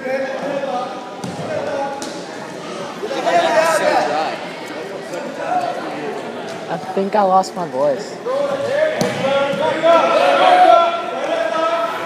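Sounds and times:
voices echoing in gymnasium: 0.0s - 12.0s.

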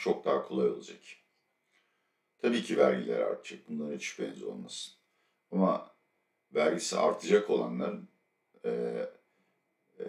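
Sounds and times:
man saying eh: 0.0s - 1.1s, 2.5s - 4.9s, 5.6s - 5.8s, 6.6s - 8.0s, 8.7s - 9.1s.

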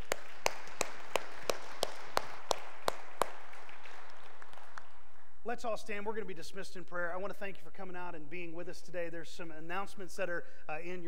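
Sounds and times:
close loud hand claps: 0.0s - 5.2s
congregation applauding: 0.0s - 5.2s.

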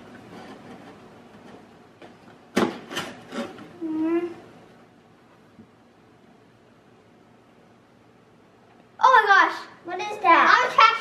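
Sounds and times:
child saying ooh: 3.8s - 4.4s
girl vocalizing: 3.8s - 4.5s.

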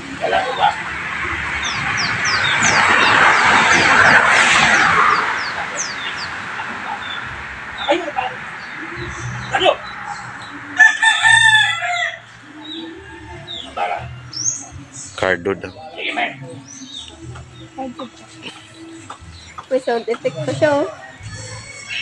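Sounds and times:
loud rushing noise: 0.0s - 12.6s
small birds chirping: 1.5s - 4.2s, 5.0s - 10.9s, 11.7s - 22.0s
rooster crowing: 10.7s - 14.2s.

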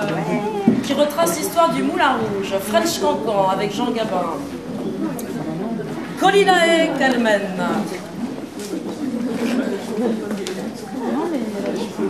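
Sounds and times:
murmur of audience voices: 0.0s - 12.0s.

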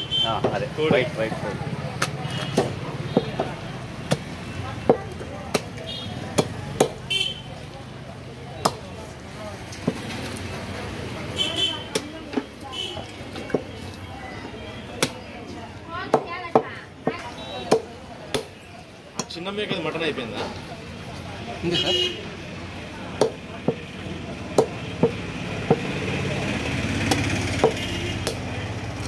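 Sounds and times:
cleaver chopping bone on wood: 2.0s - 7.1s, 8.6s - 8.9s, 11.9s - 12.5s, 15.0s - 15.3s, 16.0s - 18.6s, 23.1s - 26.0s, 27.0s - 28.5s.

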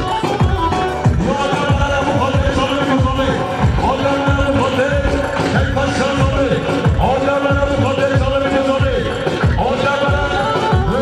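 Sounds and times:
deep drum beats: 0.0s - 11.0s
live band dance music: 0.0s - 11.0s.

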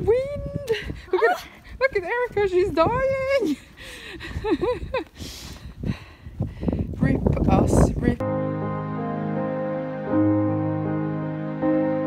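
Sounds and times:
wind rumbling on microphone: 0.0s - 8.2s
woman laughing: 0.6s - 1.6s, 3.4s - 5.2s.

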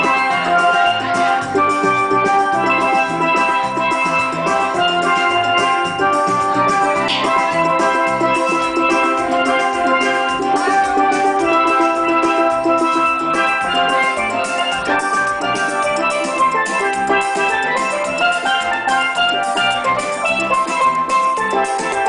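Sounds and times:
drums keeping a beat: 0.0s - 22.0s
steelpans playing melody: 0.0s - 22.0s.

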